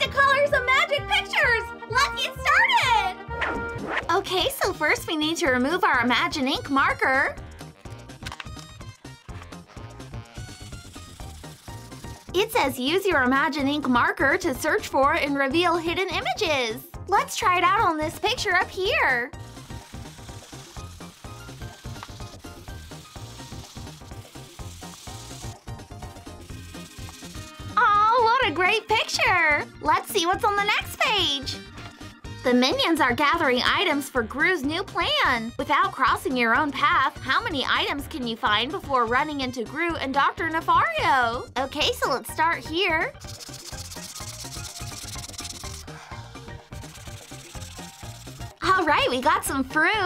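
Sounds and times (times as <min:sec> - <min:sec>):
light background music: 0:00.0 - 0:50.0
marker scrubbing on paper: 0:09.6 - 0:12.8, 0:19.5 - 0:27.7, 0:43.1 - 0:48.8
background music with beat: 0:43.1 - 0:48.8.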